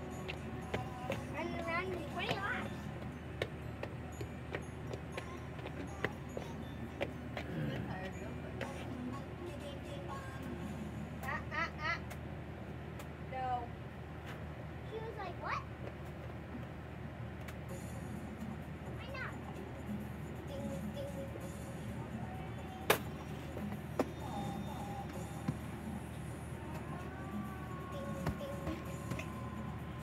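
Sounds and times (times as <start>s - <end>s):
low background hum: 0.0s - 30.0s
faint indistinct voices: 21.8s - 30.0s.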